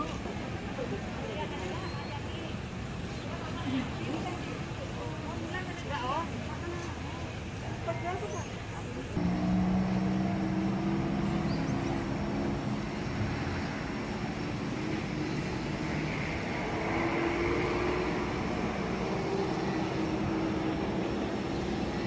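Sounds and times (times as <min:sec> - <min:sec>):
vehicle engine running: 0:09.2 - 0:15.7.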